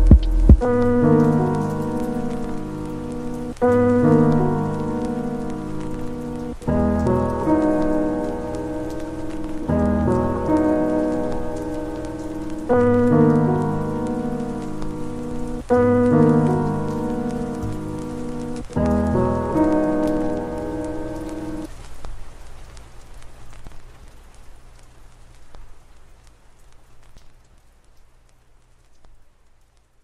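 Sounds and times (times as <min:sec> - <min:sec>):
sustained lofi chords: 0:00.0 - 0:21.7
rain: 0:00.0 - 0:30.0.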